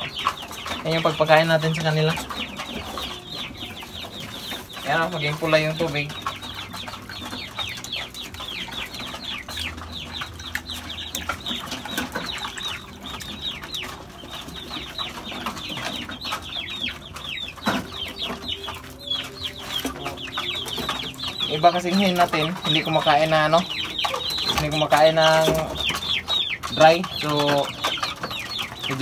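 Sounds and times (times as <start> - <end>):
chicks peeping: 0.0 - 29.0.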